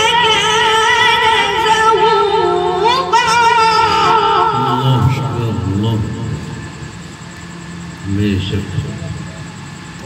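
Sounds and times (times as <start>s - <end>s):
boy reciting over loudspeakers: 0.0s - 6.6s
low background hum: 0.0s - 10.0s.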